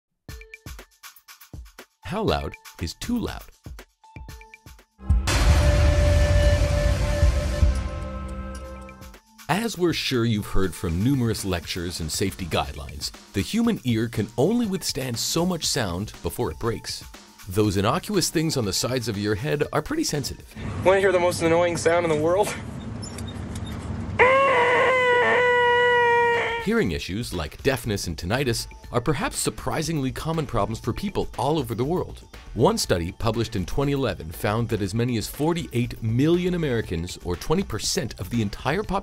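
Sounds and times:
deep rumbling boom: 0:05.0 - 0:08.6
rushing noisy swell: 0:05.1 - 0:08.4
held tone: 0:05.1 - 0:09.1.

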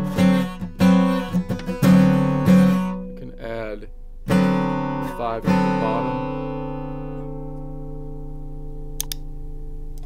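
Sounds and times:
acoustic guitar notes picked: 0:00.0 - 0:10.0.

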